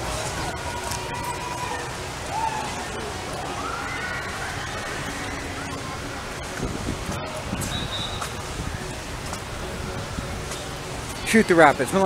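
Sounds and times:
distant indistinct voices: 0.0 - 12.0.

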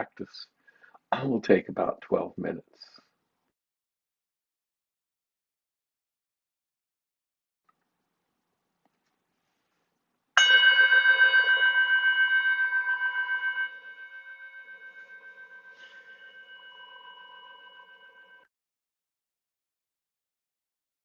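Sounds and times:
meditation bell ringing: 10.4 - 18.5.

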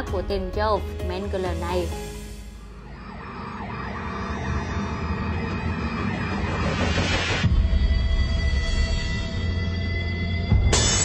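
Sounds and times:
eerie horror film music: 1.6 - 11.0.

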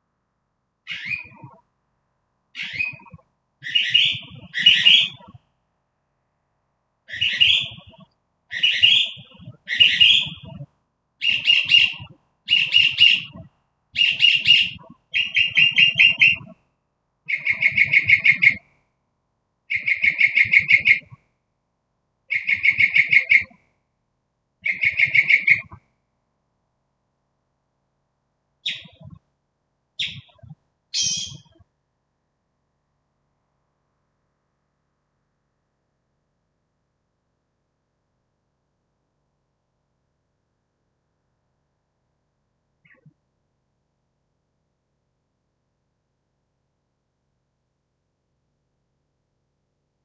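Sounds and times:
bird singing: 0.9 - 1.6, 2.6 - 5.3, 7.1 - 10.6, 11.2 - 16.5, 17.3 - 18.6, 19.7 - 21.1, 22.3 - 23.5, 24.6 - 25.7, 28.6 - 29.2, 30.0 - 31.6.

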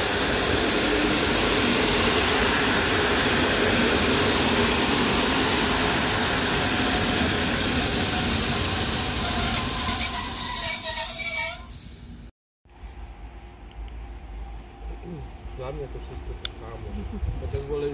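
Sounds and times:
train coaches rolling on rails: 0.0 - 11.7
high-pitched wheel squeal: 0.0 - 12.0.

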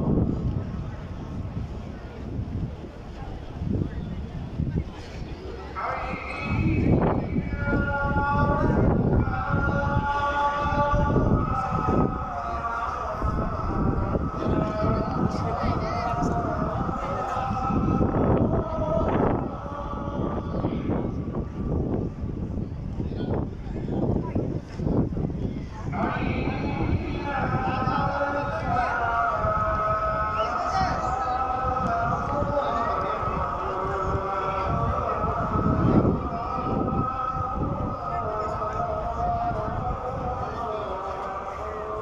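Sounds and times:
man singing call to prayer: 0.0 - 0.6, 5.5 - 24.2, 25.7 - 42.0
low crowd noise: 0.0 - 42.0.

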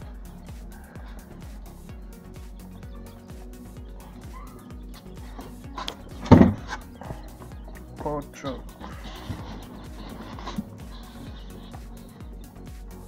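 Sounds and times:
background music: 0.0 - 13.0
man counting aloud: 8.0 - 8.7.

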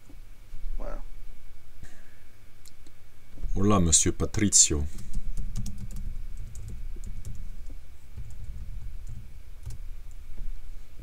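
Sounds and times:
keyboard typing clicks: 5.0 - 7.4.

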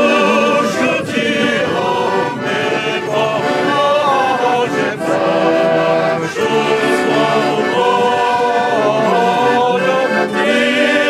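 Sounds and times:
accordion: 0.0 - 11.0
crowd singing slow song: 0.0 - 11.0.

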